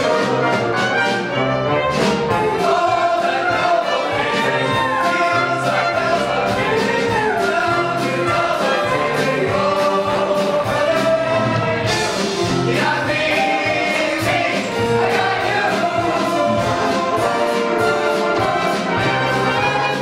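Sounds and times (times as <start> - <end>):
instrumental accompaniment: 0.0 - 20.0.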